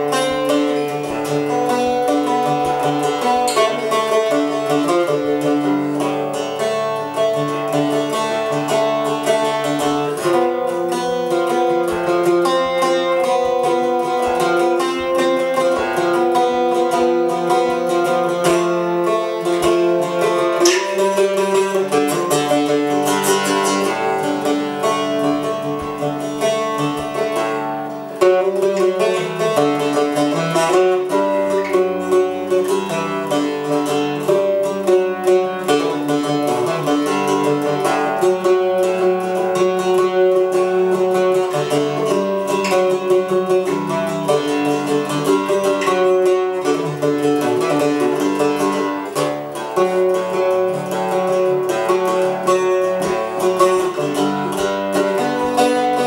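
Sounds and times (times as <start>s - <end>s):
mandocello plucked notes and chords: 0.0s - 56.0s
strong strum: 0.0s - 56.0s.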